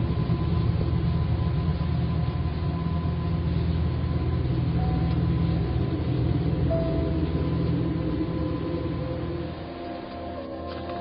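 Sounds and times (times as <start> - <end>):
deep rumble: 0.0 - 11.0.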